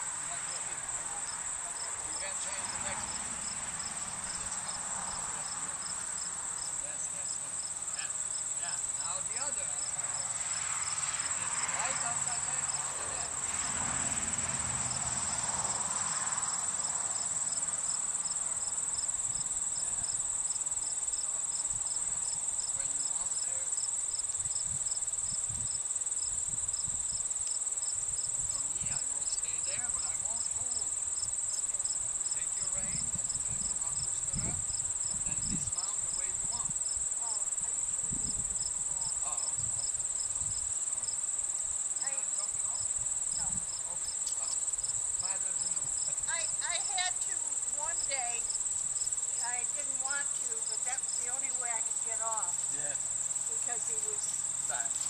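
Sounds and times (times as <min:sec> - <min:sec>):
insect chirping: 0:00.0 - 0:55.0
insects trilling: 0:00.0 - 0:55.0.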